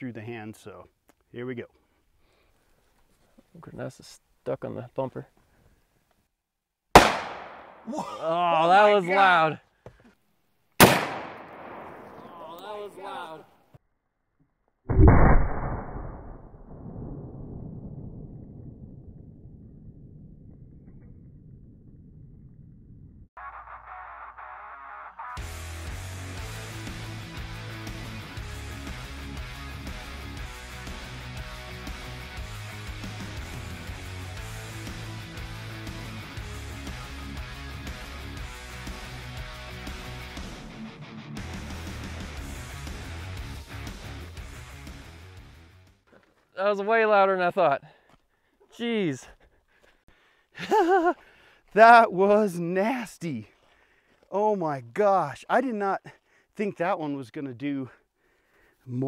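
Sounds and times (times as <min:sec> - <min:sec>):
loud blast with rumbling decay: 0:07.0 - 0:07.8, 0:10.8 - 0:12.3, 0:14.9 - 0:22.3
background music with steady beat: 0:23.4 - 0:45.8.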